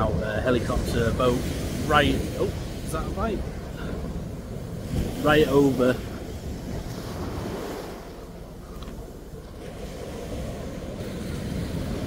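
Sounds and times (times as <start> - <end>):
surf washing against sea wall: 0.0 - 12.0
wind on microphone: 0.0 - 12.0.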